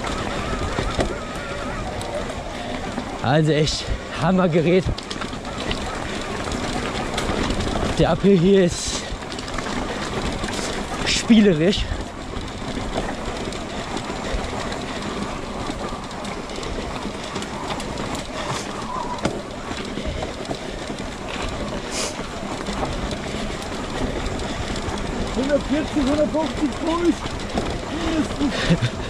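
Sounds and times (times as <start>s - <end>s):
bike rattling over cobblestones: 0.0s - 29.0s.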